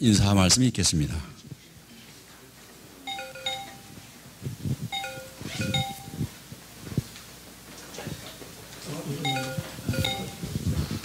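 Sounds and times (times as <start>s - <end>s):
electronic chime tune: 3.1s - 4.0s, 5.0s - 6.3s, 9.3s - 10.6s.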